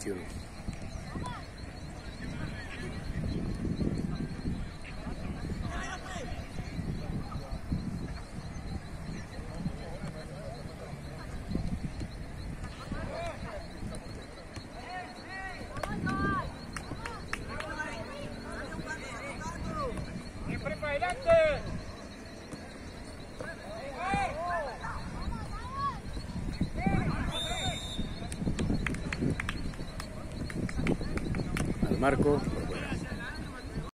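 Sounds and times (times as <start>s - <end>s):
steady high tone: 0.0s - 28.4s
players shouting: 12.7s - 28.2s.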